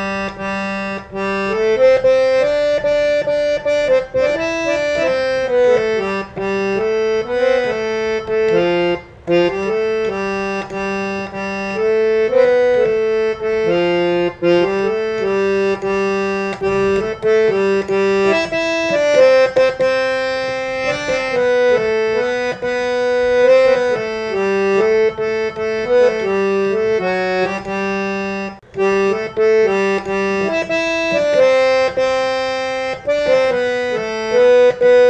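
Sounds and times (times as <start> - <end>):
harmonium melody: 0.0 - 35.0.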